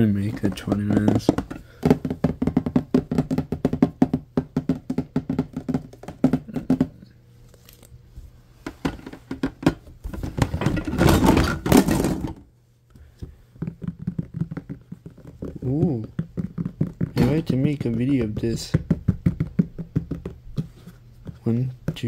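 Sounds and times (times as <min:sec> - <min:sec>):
fingertips tapping on plastic containers: 0:00.0 - 0:07.1, 0:12.9 - 0:22.0
plastic containers clattering: 0:00.0 - 0:07.1, 0:08.6 - 0:22.0.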